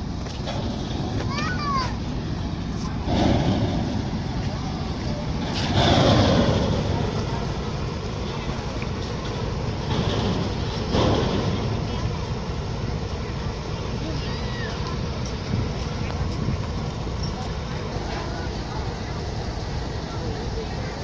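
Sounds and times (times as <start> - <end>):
steady low rumble: 0.0 - 21.0.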